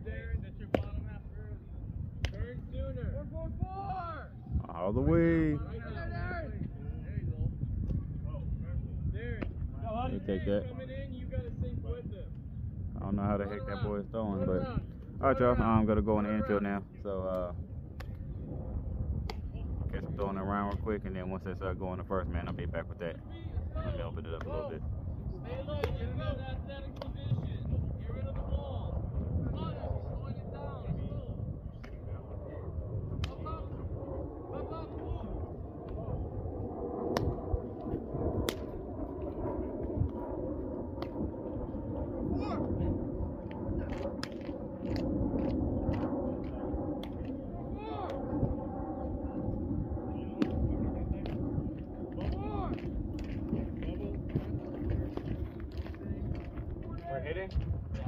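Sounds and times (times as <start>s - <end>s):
wind rumble on microphone: 0.0s - 58.0s
baseballs popping into gloves: 38.4s - 38.8s.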